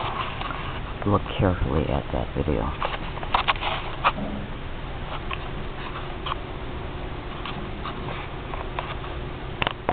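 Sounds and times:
soft clicks and rustles: 0.0 - 1.1, 7.3 - 9.9
faint steady hum: 0.0 - 9.9
camera handling rumble: 2.7 - 4.2.

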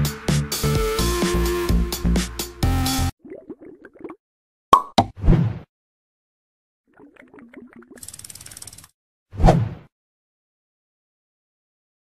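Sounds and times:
ratchet-like clicking: 8.0 - 8.9.

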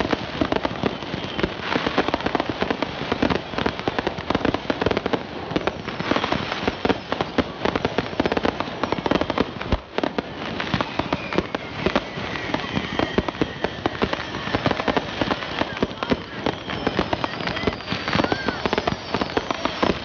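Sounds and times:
fireworks bangs and crackling pops: 0.0 - 20.0.

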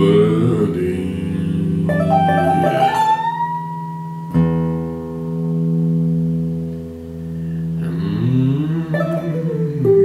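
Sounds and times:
blues harmonica bent notes: 1.5 - 4.7
electric guitar chord ringing: 1.9 - 7.9.

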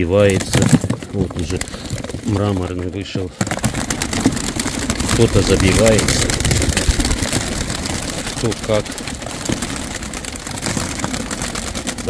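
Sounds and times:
pigeon wings flapping: 0.0 - 12.0.

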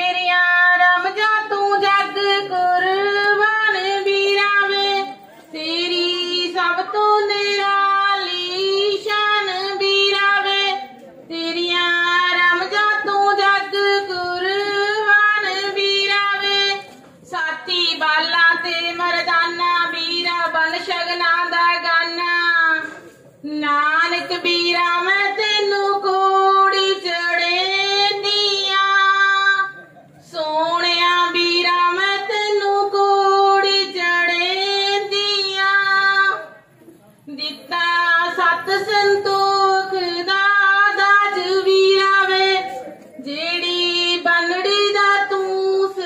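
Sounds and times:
woman singing unaccompanied: 0.0 - 36.6, 37.3 - 46.0.

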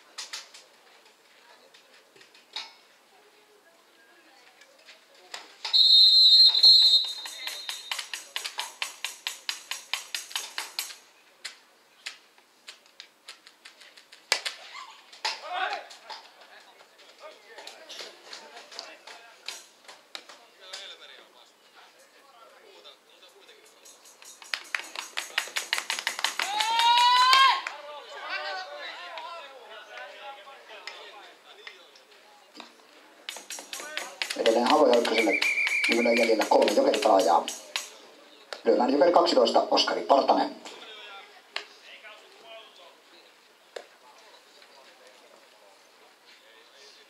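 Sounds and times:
loud whistle blast: 5.7 - 8.0, 35.2 - 36.3
people clapping: 6.9 - 10.9, 24.2 - 29.4, 33.3 - 38.0
person shouting: 26.4 - 27.7.

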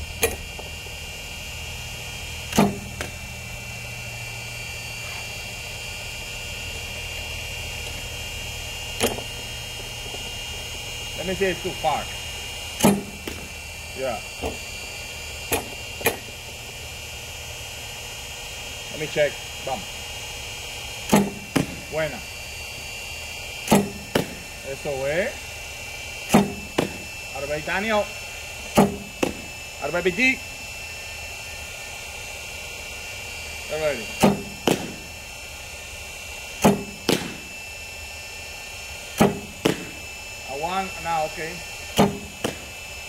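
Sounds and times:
pitching machine throwing ball: 0.0 - 1.0, 2.4 - 3.6, 8.6 - 16.8, 20.9 - 22.3, 23.4 - 25.0, 26.2 - 30.2, 34.0 - 35.8, 36.4 - 37.6, 38.9 - 40.2, 41.7 - 43.0
steady high whine: 0.0 - 43.0
steady machine hum: 0.0 - 43.0
pitching machine firing ball: 2.4 - 3.2, 8.9 - 9.4, 12.7 - 13.7, 21.0 - 22.1, 23.6 - 24.6, 26.2 - 27.1, 28.6 - 29.5, 34.1 - 35.3, 36.5 - 37.6, 39.0 - 40.1, 41.9 - 42.9
ball smacking into mitt: 34.2 - 35.0, 36.6 - 37.4, 39.2 - 39.9, 42.0 - 42.7.

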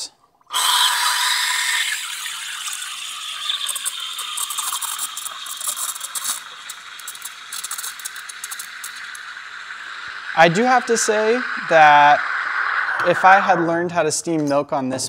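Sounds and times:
rapid crackling of frothing milk: 0.0 - 13.7
steam wand hissing in milk: 0.5 - 14.4.

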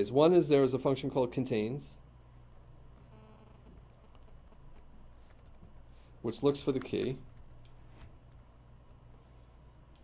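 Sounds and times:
low steady hum: 0.0 - 10.0
typing on keyboard: 3.8 - 5.8.

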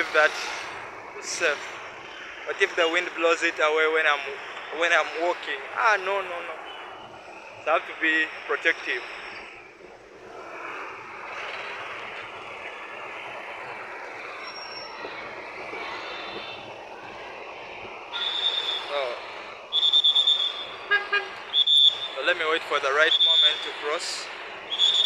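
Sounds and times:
street traffic: 0.0 - 25.0
high-pitched vehicle horn toots: 19.8 - 21.9.

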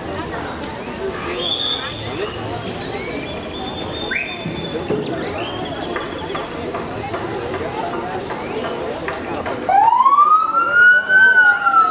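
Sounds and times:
crowd voices: 0.0 - 11.9
siren wailing: 9.7 - 11.9.

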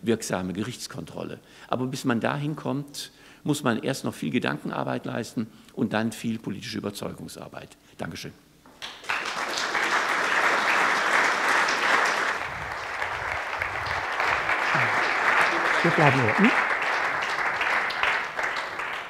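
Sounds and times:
crowd applauding: 8.8 - 19.0
man's voice: 15.8 - 16.5.

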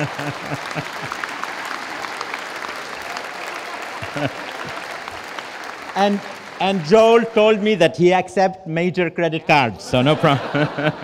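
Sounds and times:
audience applauding: 0.0 - 8.1.

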